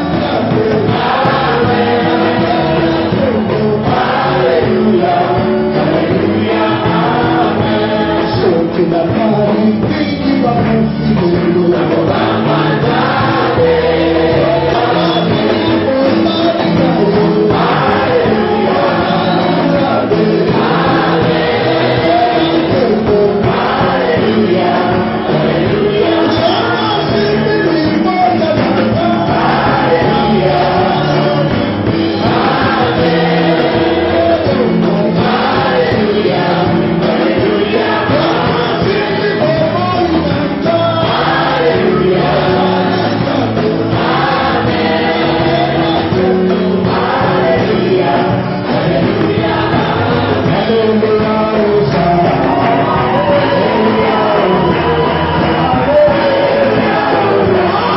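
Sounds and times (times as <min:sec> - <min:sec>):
choir singing gospel: 0:00.0 - 0:57.9.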